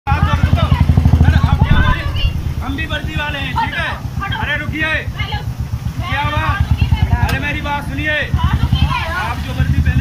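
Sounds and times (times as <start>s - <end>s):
motorcycle engine idling: 0.1s - 10.0s
people talking: 0.2s - 10.0s.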